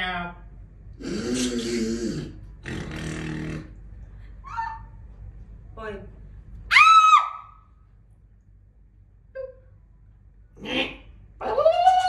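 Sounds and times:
man making silly animal noise: 1.0s - 3.8s.

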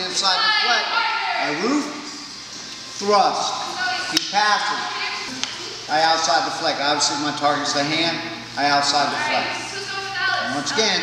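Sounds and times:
man speaking: 4.2s - 9.5s.

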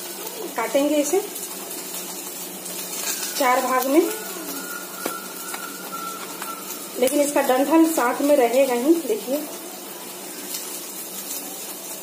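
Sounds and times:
okra sizzling in oil: 0.0s - 12.0s.

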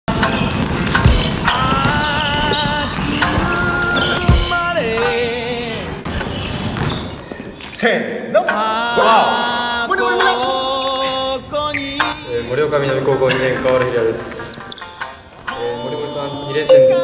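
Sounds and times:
basketballs bouncing on wooden floor: 0.1s - 4.6s.

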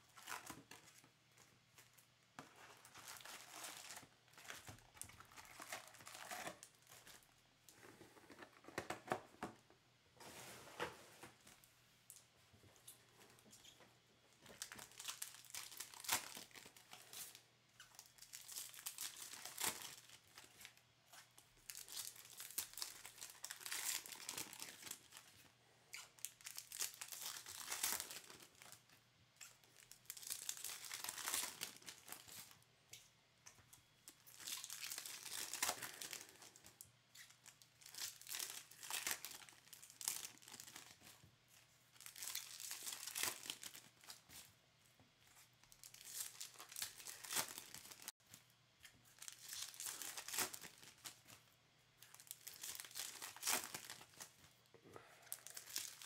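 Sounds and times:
foil wrappers crinkling and tearing: 0.1s - 7.4s, 14.5s - 25.4s, 26.0s - 28.9s, 29.6s - 32.6s, 34.1s - 41.2s, 41.9s - 44.5s, 45.6s - 48.1s, 49.0s - 51.4s, 52.0s - 54.5s, 55.2s - 56.0s.

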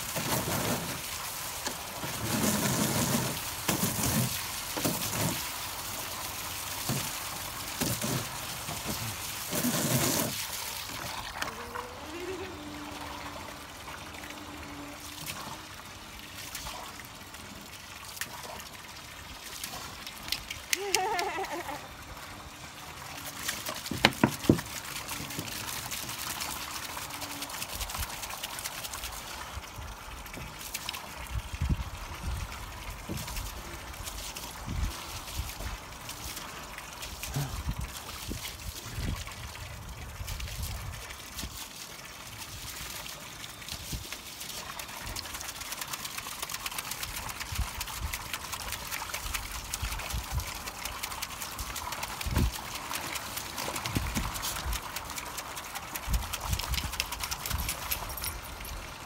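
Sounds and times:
dog splashing in water: 0.0s - 11.5s
hose water pouring into pool: 0.0s - 59.0s.

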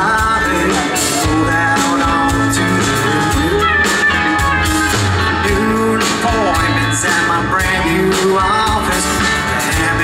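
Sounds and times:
electric guitars: 0.0s - 10.0s
live rock band playing: 0.0s - 10.0s.

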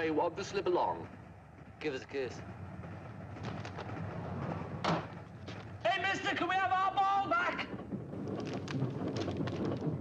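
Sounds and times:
railway carriage rumble: 0.0s - 10.0s
man shouting: 5.8s - 7.7s.

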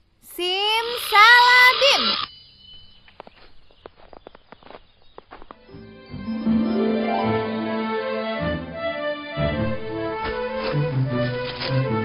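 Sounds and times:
background music: 5.6s - 12.0s.

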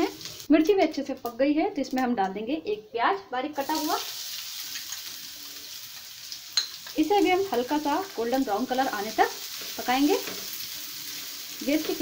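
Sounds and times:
onion sizzling in hot oil: 0.0s - 2.5s, 3.4s - 12.0s.

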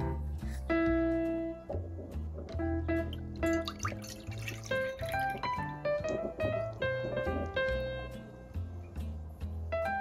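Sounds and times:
piano music: 0.0s - 10.0s
milk pouring and splashing: 3.1s - 7.6s.

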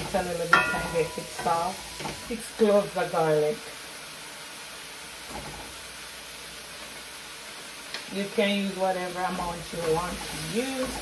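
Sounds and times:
vegetables sizzling in pan: 0.0s - 11.0s.

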